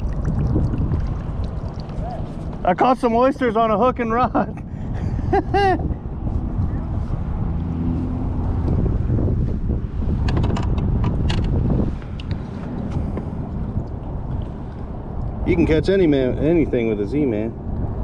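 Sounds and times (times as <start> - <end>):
wind noise on microphone: 0.0 - 18.0.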